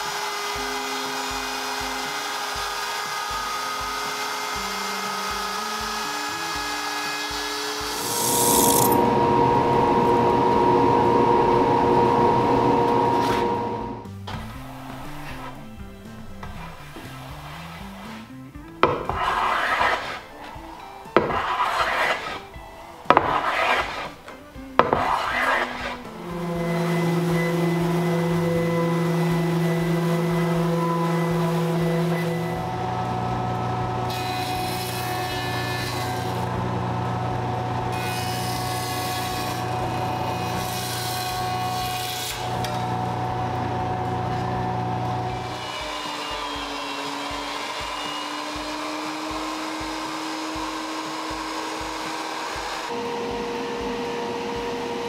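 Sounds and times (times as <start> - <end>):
jointer humming: 0.0 - 17.4, 22.2 - 55.0
hand tool strokes along wood: 0.0 - 36.7, 37.9 - 55.0
router whining cutting wood: 0.0 - 55.0.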